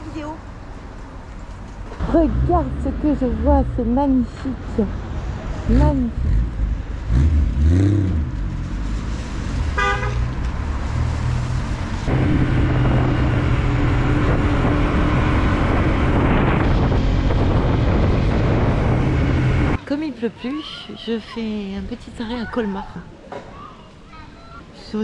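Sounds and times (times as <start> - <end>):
car engine rumble: 0.0 - 19.9
car horn toot: 9.8 - 10.3
wind noise on microphone: 11.8 - 19.8.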